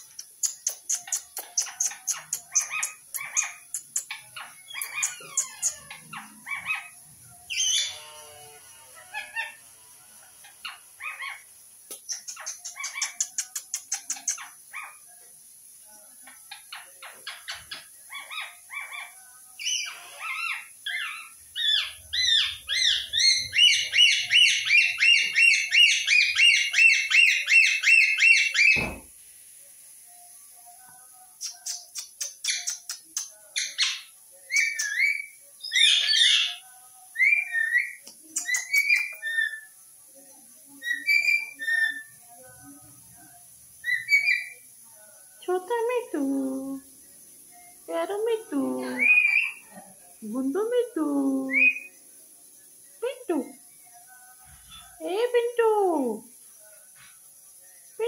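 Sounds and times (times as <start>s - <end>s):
parakeet chattering and chirping: 0.0s - 8.0s, 10.4s - 15.0s, 16.3s - 29.0s, 31.4s - 36.6s, 37.2s - 39.7s, 43.8s - 44.6s, 48.0s - 49.7s
parakeet screeching: 4.4s - 6.9s, 7.5s - 8.0s, 18.1s - 29.0s, 48.9s - 49.7s.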